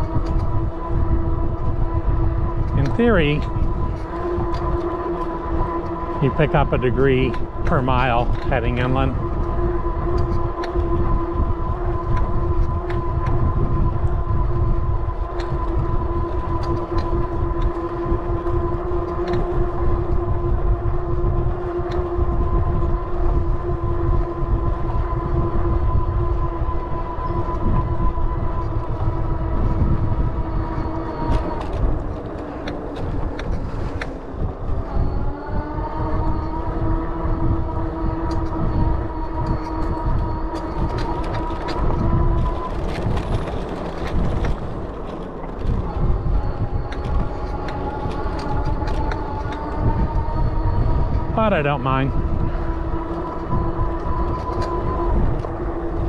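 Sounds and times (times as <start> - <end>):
electric bike motor whine: 0.0 - 56.0
wind rumble on microphone: 0.0 - 56.0.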